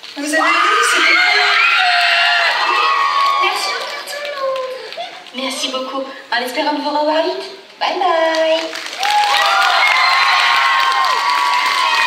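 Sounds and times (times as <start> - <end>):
crowd cheering and shouting: 0.2 - 4.6, 9.0 - 12.0.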